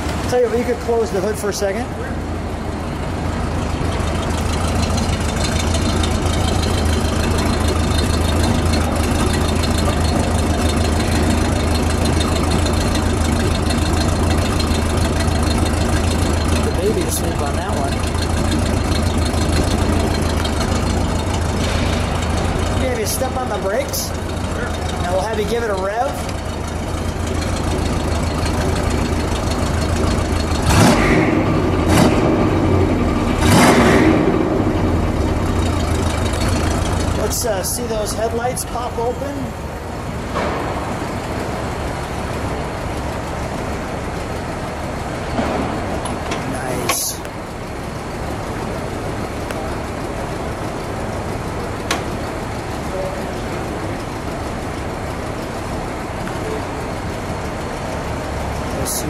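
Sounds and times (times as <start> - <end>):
car engine idling: 0.0 - 59.0.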